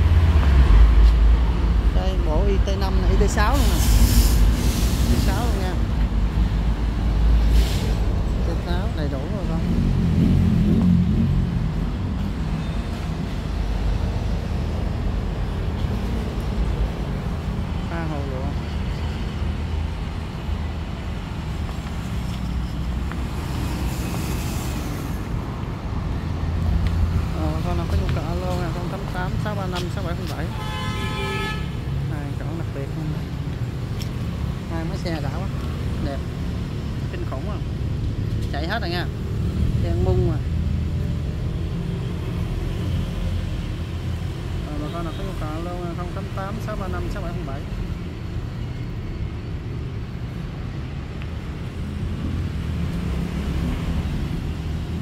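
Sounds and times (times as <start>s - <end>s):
traffic rumble: 0.0s - 55.0s
car horn tooting: 30.5s - 31.8s.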